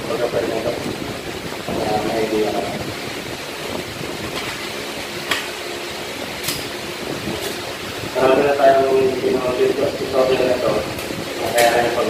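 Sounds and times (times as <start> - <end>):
fan-like hum: 0.0 - 12.0.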